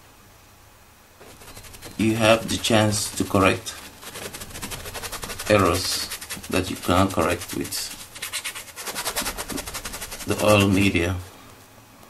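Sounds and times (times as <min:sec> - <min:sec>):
paintbrush scrubbing on canvas: 0:01.2 - 0:11.2.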